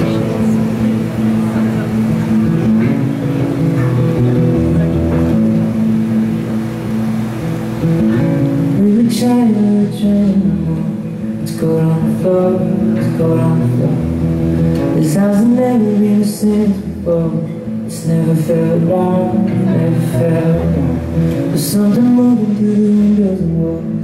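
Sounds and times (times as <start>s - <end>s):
acoustic guitar: 0.0s - 24.0s
low bass notes: 0.0s - 24.0s.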